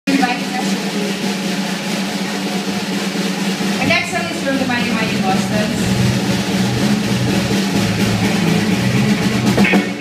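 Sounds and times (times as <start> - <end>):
drum roll: 0.1 - 10.0
rock band sustained chord: 1.8 - 10.0.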